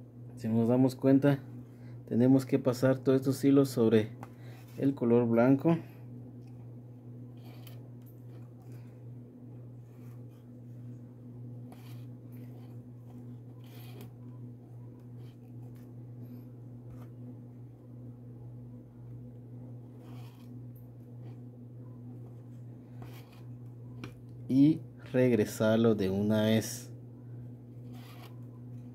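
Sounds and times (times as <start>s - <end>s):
low hum: 0.0s - 28.9s.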